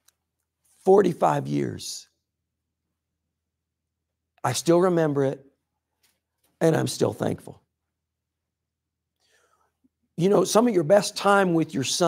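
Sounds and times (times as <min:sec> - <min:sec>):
faint breath: 0:09.2 - 0:09.8.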